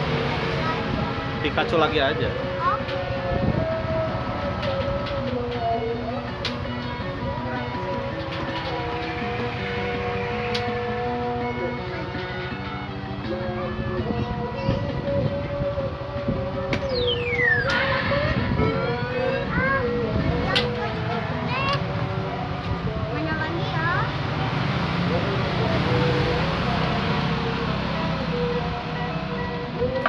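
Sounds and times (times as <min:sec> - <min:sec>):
simple electronic tune: 0:16.9 - 0:19.8.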